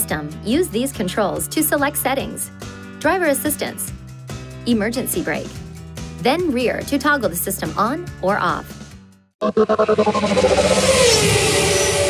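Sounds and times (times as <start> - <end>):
car engine: 9.4 - 12.0
loud rushing noise: 10.0 - 12.0.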